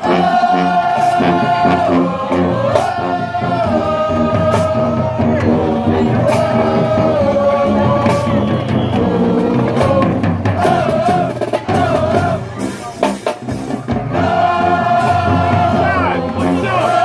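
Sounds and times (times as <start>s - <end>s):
marching band playing: 0.0s - 17.0s.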